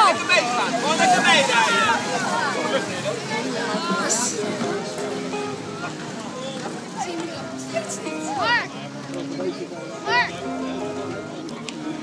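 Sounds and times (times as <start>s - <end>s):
spectators calling out and cheering: 0.0s - 12.0s.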